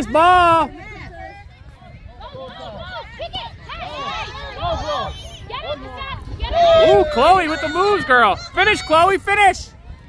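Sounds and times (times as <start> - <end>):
spectators talking and calling out: 0.0 - 10.0
crowd exclaiming oh: 3.8 - 9.6.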